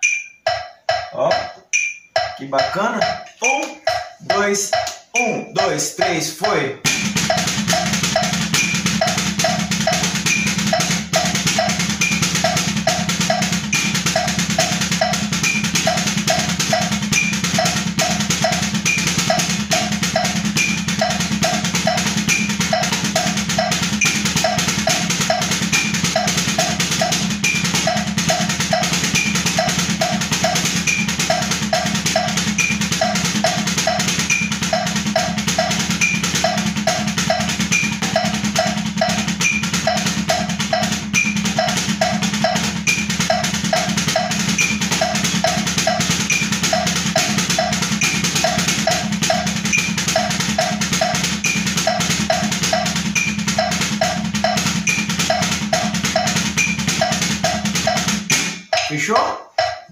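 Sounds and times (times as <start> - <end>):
drumsticks striking practice pad: 0.0 - 59.9
metronome ticking: 0.0 - 59.9.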